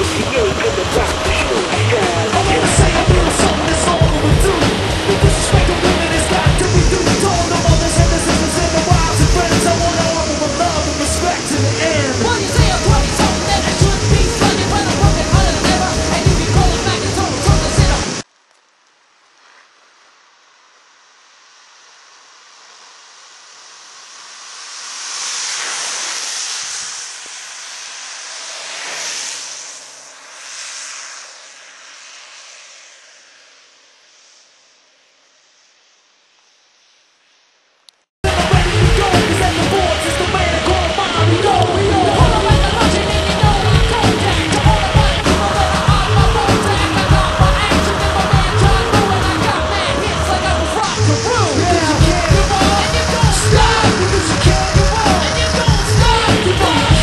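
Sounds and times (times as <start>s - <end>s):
background music: 0.0s - 18.2s, 38.2s - 57.0s
longboard wheels rolling on asphalt: 21.4s - 34.4s.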